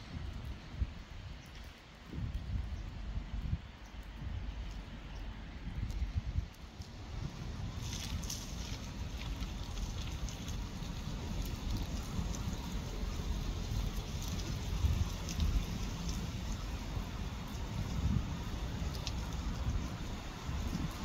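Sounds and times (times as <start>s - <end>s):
raindrops ticking: 0.0s - 21.0s
wind rumbling on microphone: 0.0s - 21.0s.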